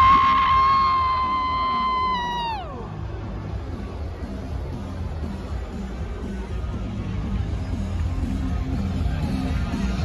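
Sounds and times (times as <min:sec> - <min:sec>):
packed stadium crowd noise: 0:00.0 - 0:10.0.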